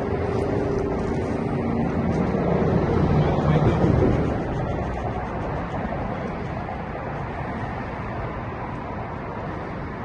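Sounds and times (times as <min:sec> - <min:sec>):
low rumble: 0:00.0 - 0:09.6
steady engine drone: 0:00.0 - 0:10.0.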